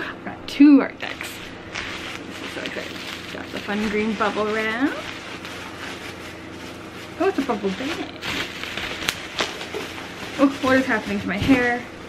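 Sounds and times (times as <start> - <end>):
plastic mailer crinkling: 1.1 - 12.0.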